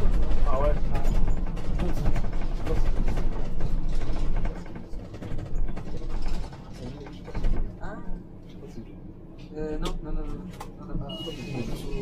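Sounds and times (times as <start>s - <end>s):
interior fittings rattling: 0.0s - 7.8s
bus engine and road rumble: 0.0s - 12.0s.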